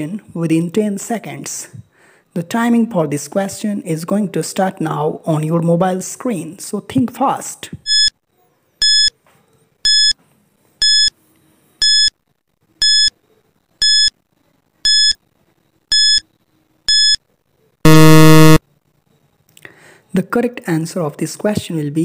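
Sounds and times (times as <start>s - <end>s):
short electronic beeps: 7.9s - 8.1s, 8.8s - 9.1s, 9.9s - 10.1s, 10.8s - 11.1s, 11.8s - 12.1s, 12.8s - 13.1s, 13.8s - 14.1s, 14.9s - 15.2s, 15.9s - 16.2s, 16.9s - 17.2s, 17.9s - 18.6s
low buzzer: 13.8s - 14.1s, 14.9s - 15.2s, 15.9s - 16.2s, 16.9s - 17.2s, 17.9s - 18.6s.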